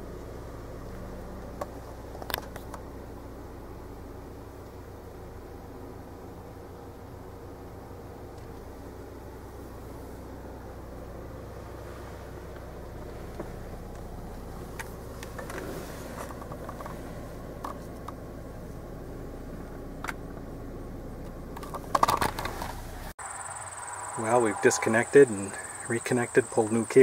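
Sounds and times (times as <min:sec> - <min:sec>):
car cabin road and engine noise: 0:00.0 - 0:27.0
insects chirping: 0:00.0 - 0:27.0
handling clatter: 0:12.4 - 0:18.3, 0:21.2 - 0:23.1.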